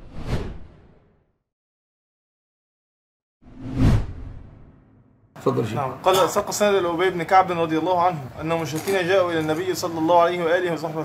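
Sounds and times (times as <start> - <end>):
whoosh: 0.0 - 1.2, 3.4 - 5.3.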